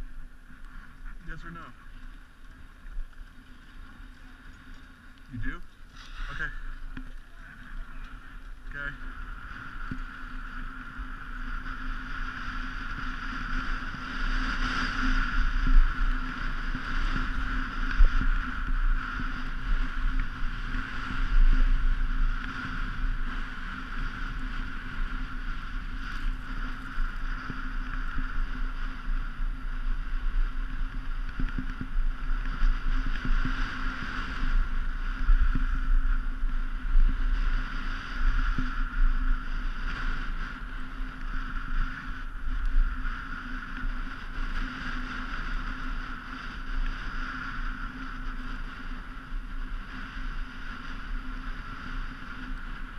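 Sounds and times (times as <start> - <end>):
skis sliding on packed snow: 0.0 - 52.9
wind buffeting microphone: 0.0 - 52.9.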